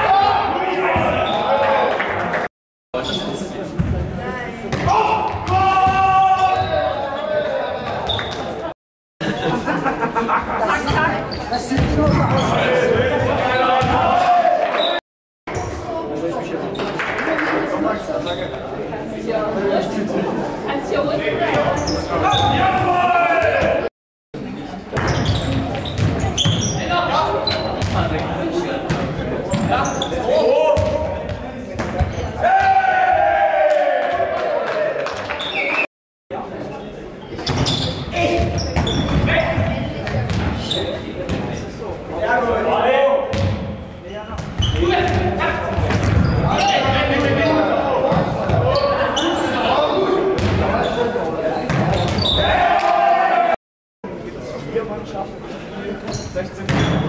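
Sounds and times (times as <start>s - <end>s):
players shouting: 4.8s - 8.0s, 12.4s - 15.0s, 22.2s - 23.9s, 32.4s - 35.8s, 52.2s - 53.6s.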